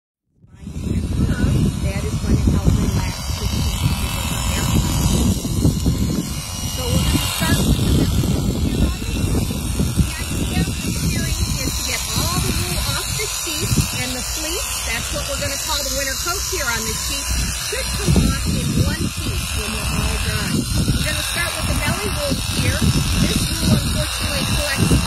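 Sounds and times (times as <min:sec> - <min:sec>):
wind noise on microphone: 0:00.3 - 0:25.0
electric shearing clippers running: 0:00.5 - 0:25.0.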